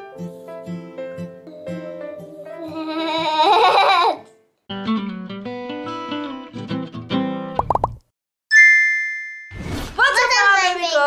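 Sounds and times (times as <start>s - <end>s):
bright bell-like ding: 8.5s - 9.5s.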